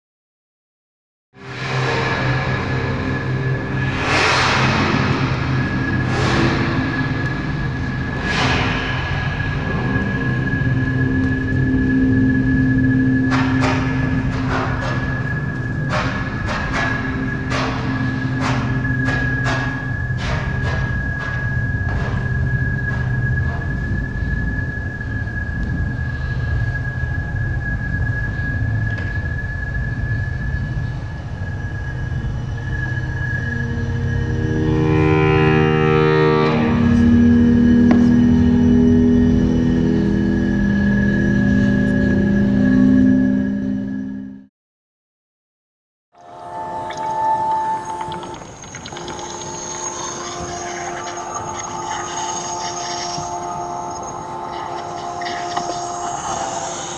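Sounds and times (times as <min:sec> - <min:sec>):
low saxophone drone: 0:01.4 - 0:44.5, 0:46.2 - 0:56.9
steady high electronic tone: 0:01.4 - 0:44.5, 0:46.2 - 0:56.9.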